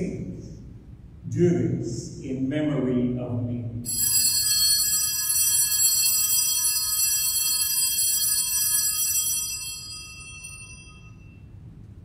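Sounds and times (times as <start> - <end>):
altar bells ringing: 3.9 - 11.7.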